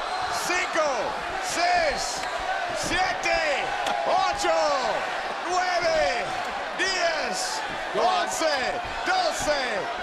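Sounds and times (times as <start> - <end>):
men shouting counts: 0.2 - 10.0.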